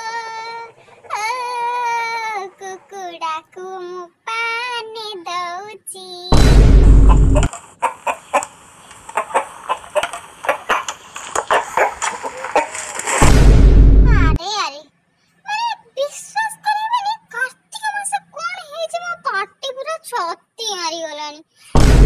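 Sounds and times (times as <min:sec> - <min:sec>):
high-pitched comic voice singing: 0:00.0 - 0:06.4
loud boom: 0:06.3 - 0:07.5, 0:13.1 - 0:14.4, 0:21.8 - 0:22.0
short sharp sounds: 0:11.9 - 0:14.4.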